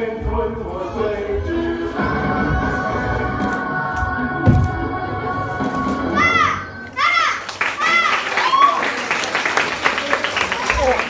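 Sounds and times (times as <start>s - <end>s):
backing music with held notes: 0.0s - 6.9s
child shouting high-pitched: 6.2s - 8.6s.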